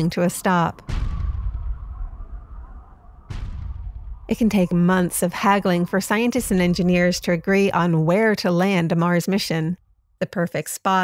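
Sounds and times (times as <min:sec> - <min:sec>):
heavy booming impacts: 0:00.7 - 0:08.8.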